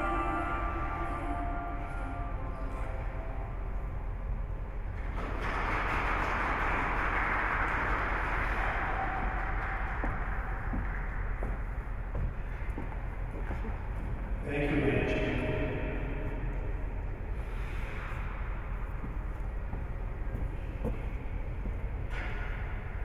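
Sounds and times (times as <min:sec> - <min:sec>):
music: 0:00.0 - 0:03.7
audience applause: 0:05.2 - 0:10.8.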